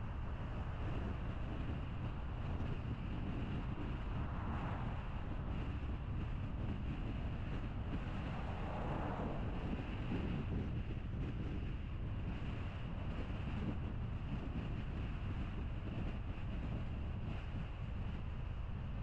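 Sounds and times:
car road and tyre noise: 0:00.0 - 0:19.0.

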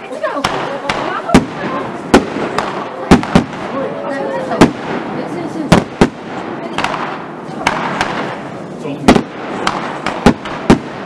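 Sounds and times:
people talking and laughing: 0:00.0 - 0:10.2
fireworks bursting: 0:00.0 - 0:11.0.

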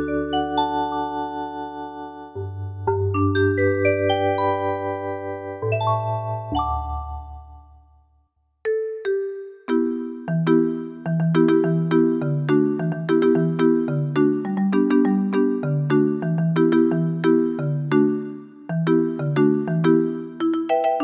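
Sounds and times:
digital keyboard playing chords: 0:00.0 - 0:07.8, 0:08.7 - 0:21.0.

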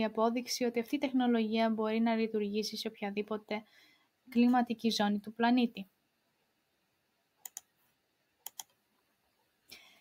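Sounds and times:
short breath: 0:03.7 - 0:04.2, 0:09.7 - 0:10.0.

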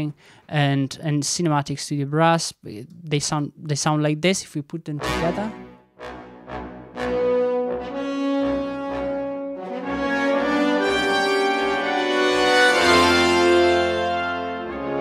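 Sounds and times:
sustained brass chords: 0:05.0 - 0:15.0.

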